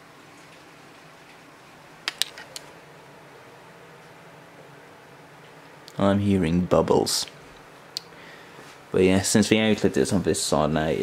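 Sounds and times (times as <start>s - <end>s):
fans and pump humming: 0.0s - 11.0s.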